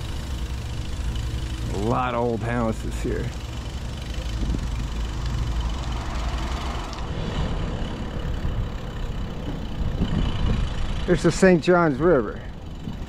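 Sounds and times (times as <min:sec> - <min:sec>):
car traffic passing: 0:00.0 - 0:13.0
wind and road noise rumble: 0:00.0 - 0:13.0.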